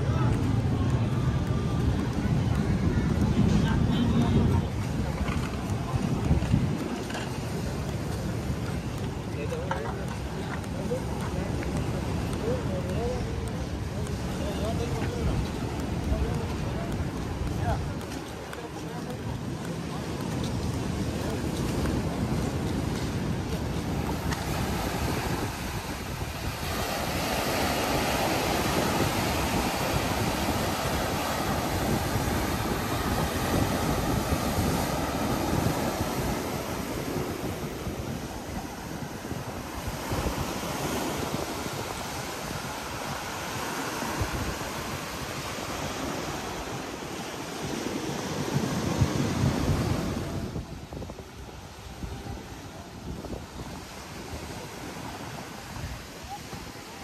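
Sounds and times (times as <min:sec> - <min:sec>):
ocean surf breaking on sand: 0:00.0 - 0:57.0
wind rumbling on microphone: 0:00.0 - 0:57.0.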